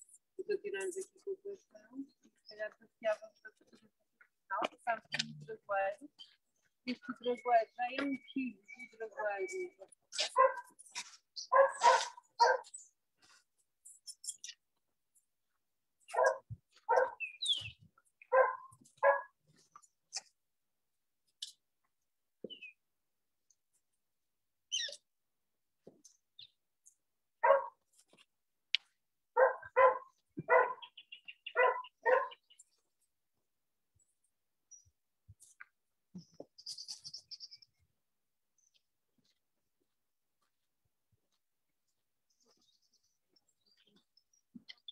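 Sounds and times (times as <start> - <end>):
bird chirping: 6.2 - 12.9, 13.8 - 14.6, 16.0 - 19.2, 24.7 - 25.1, 29.4 - 32.9, 34.6 - 37.9, 42.3 - 44.9
dog barking: 10.2 - 10.8, 11.5 - 12.7, 16.1 - 17.2, 18.3 - 19.4, 27.4 - 27.8, 29.4 - 30.9, 31.5 - 32.4.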